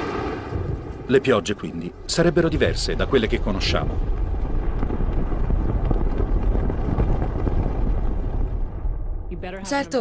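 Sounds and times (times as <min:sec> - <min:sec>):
deep rumbling wind-like noise: 0:00.0 - 0:10.0.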